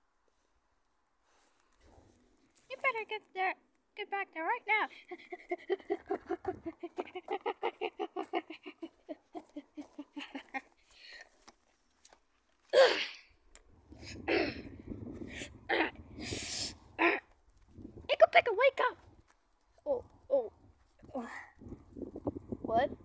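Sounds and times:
rustling among twigs and branches: 0:06.6 - 0:12.7.

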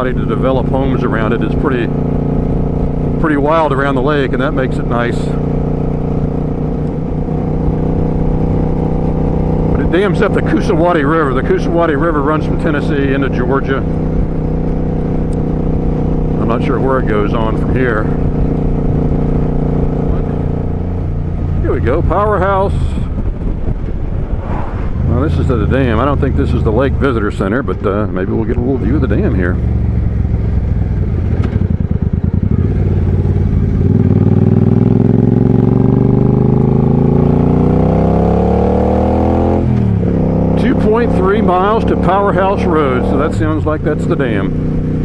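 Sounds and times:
motorcycle engine cruising: 0:00.0 - 0:45.0.

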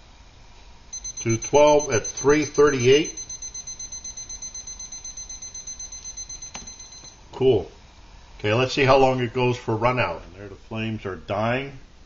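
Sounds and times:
thermometer alarm beeping: 0:00.9 - 0:07.2.

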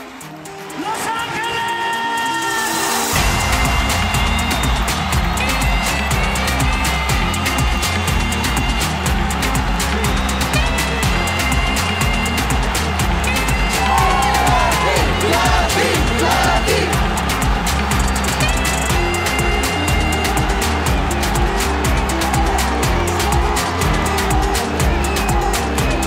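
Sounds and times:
fast ticking percussion: 0:00.0 - 0:26.0
deep bass beat: 0:03.1 - 0:26.0.

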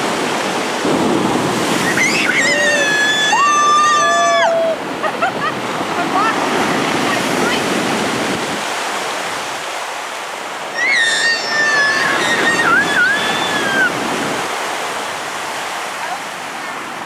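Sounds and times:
surf washing up pebble beach: 0:00.0 - 0:17.0
high-pitched voice crying out: 0:02.0 - 0:04.8, 0:10.8 - 0:14.0.

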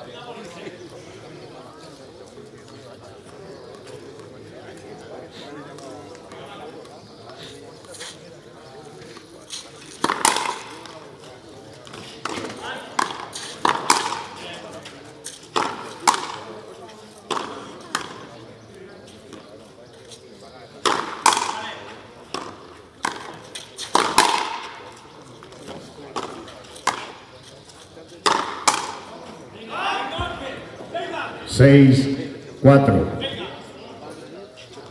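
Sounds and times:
ball hitting concrete wall: 0:22.3 - 0:24.7, 0:28.2 - 0:29.1
rubber ball cracking off rackets: 0:28.2 - 0:29.0.

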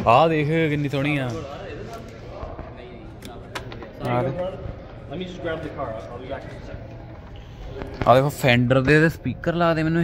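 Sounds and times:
faint background voices: 0:00.8 - 0:09.6.

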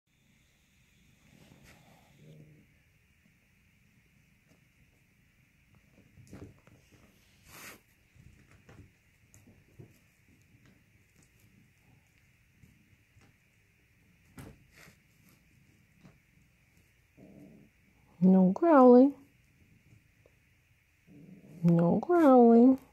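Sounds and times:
kitten growling: 0:01.5 - 0:02.8, 0:17.1 - 0:18.0, 0:21.0 - 0:21.8
kittens tapping and scuffling: 0:05.7 - 0:17.0.

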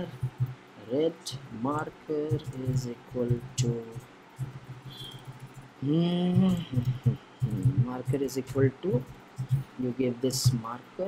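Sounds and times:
faint low steady hum: 0:00.0 - 0:11.0
man humming and laughing: 0:05.8 - 0:07.7.

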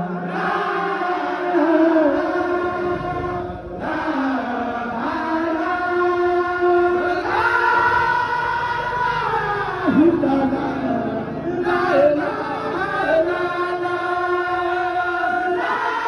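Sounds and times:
men chanting in unison: 0:00.0 - 0:16.0.

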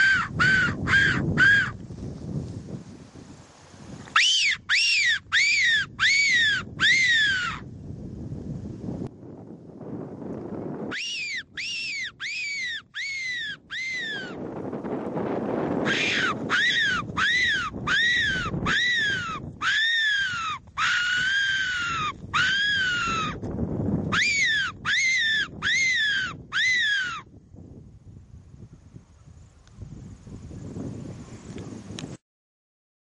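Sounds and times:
fox whistle squealing: 0:00.0 - 0:01.8, 0:04.2 - 0:07.6, 0:10.9 - 0:14.4, 0:15.8 - 0:23.4, 0:24.1 - 0:27.2.

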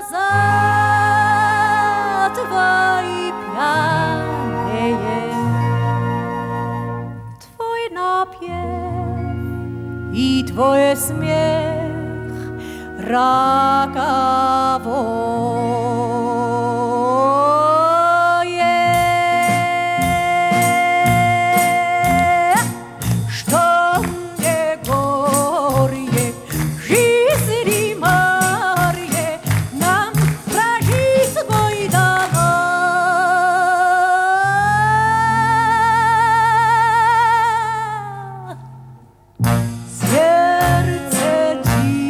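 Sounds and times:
woman singing with vibrato: 0:00.0 - 0:06.6, 0:07.4 - 0:09.4, 0:10.1 - 0:38.9, 0:39.9 - 0:42.0
band with guitar: 0:18.8 - 0:33.0, 0:39.4 - 0:42.0.

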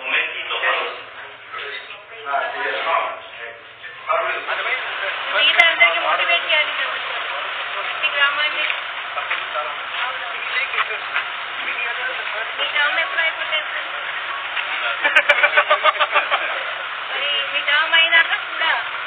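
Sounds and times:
group of people talking: 0:00.0 - 0:19.0.

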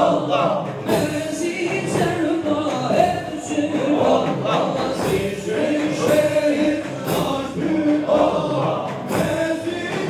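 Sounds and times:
frame drums beating: 0:00.0 - 0:10.0
men chanting together: 0:00.0 - 0:10.0.

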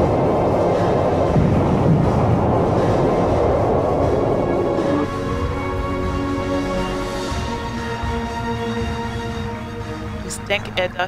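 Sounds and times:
rumbling war sound effects: 0:00.0 - 0:10.9
dramatic music: 0:00.0 - 0:11.0
tuneful music: 0:00.0 - 0:11.0.

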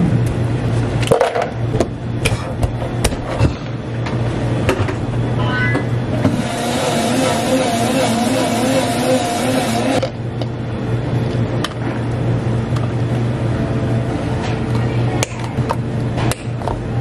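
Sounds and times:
blender running: 0:06.2 - 0:10.1.

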